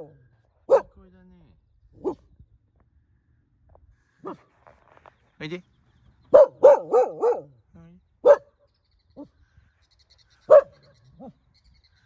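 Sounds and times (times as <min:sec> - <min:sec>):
dog barking: 0:00.7 - 0:01.0, 0:02.0 - 0:02.3, 0:04.2 - 0:04.5, 0:06.3 - 0:07.6, 0:08.2 - 0:08.5, 0:10.5 - 0:11.4.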